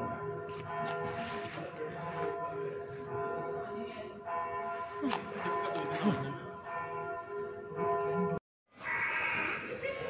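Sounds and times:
church bells ringing: 0:00.0 - 0:08.4.

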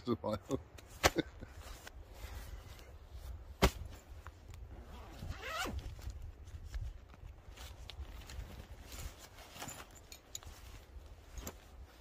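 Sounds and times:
zip being pulled open: 0:04.7 - 0:05.9.

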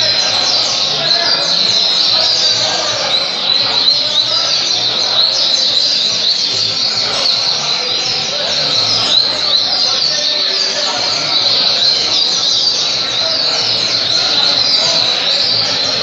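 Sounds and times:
bird singing high chirps and trills: 0:00.0 - 0:16.0
other songbirds singing: 0:00.0 - 0:16.0.

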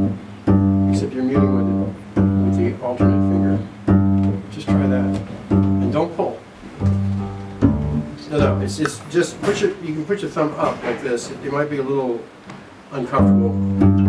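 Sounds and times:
double bass plucked low note: 0:00.0 - 0:06.0, 0:06.8 - 0:08.9, 0:13.2 - 0:14.0.

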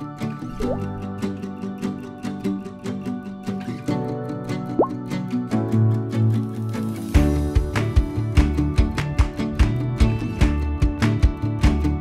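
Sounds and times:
upbeat background music: 0:00.0 - 0:12.0
rising bloop sound effect: 0:00.5 - 0:01.0.

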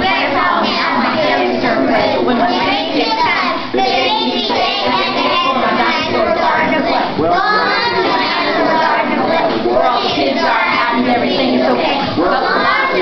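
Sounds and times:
children singing in chorus: 0:00.0 - 0:13.0.

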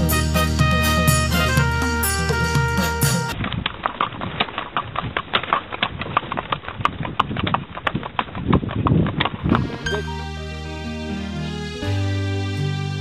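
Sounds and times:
horse hooves on paved road: 0:01.4 - 0:09.9.

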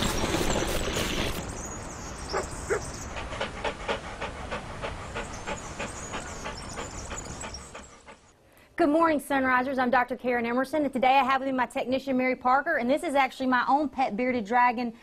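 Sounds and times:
dog panting: 0:02.3 - 0:08.4.

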